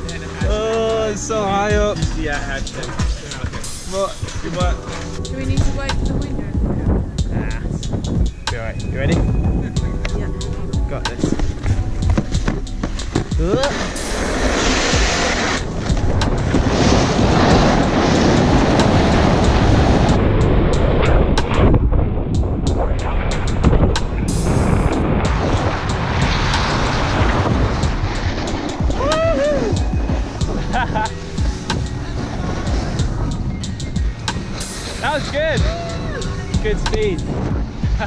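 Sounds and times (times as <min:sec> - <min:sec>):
wind rushing over microphone: 0:00.0 - 0:38.0
snowboard edges scraping on snow: 0:11.2 - 0:20.2, 0:24.3 - 0:38.0
voices shouting and laughing: 0:28.9 - 0:29.9, 0:35.0 - 0:37.1.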